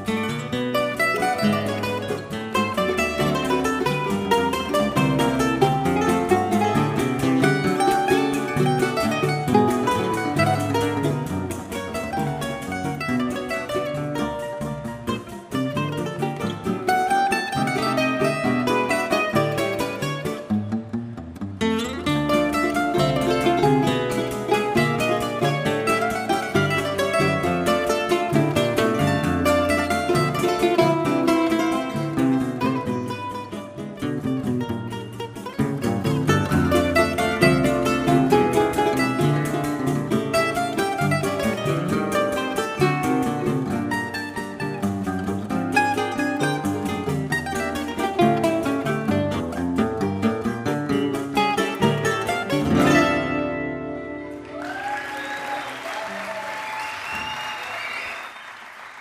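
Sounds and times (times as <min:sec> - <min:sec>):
acoustic guitars plucking: 0:00.0 - 0:55.0
mandolin plucking: 0:00.0 - 0:55.0.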